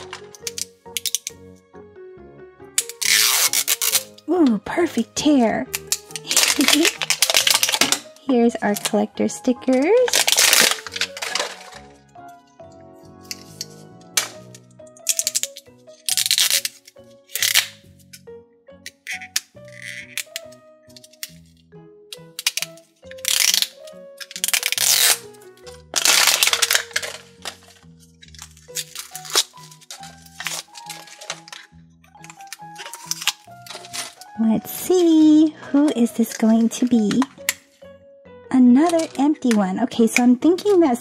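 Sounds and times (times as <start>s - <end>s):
plastic wrap crackling and tearing: 0.0s - 1.4s, 2.8s - 4.3s, 5.7s - 9.0s, 9.6s - 12.0s, 13.4s - 18.1s, 18.9s - 21.5s, 22.2s - 34.5s
light background music: 0.0s - 41.0s.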